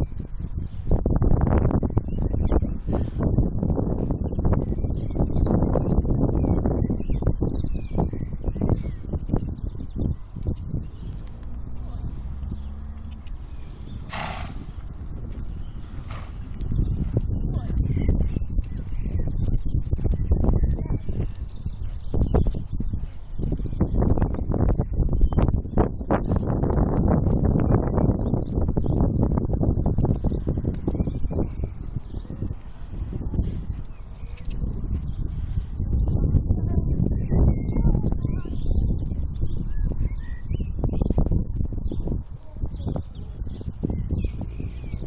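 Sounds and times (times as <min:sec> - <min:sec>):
horse hoofbeats on sand: 0:02.0 - 0:25.9
horse low drawn-out tone: 0:10.1 - 0:19.7
horse snorting: 0:13.8 - 0:15.0.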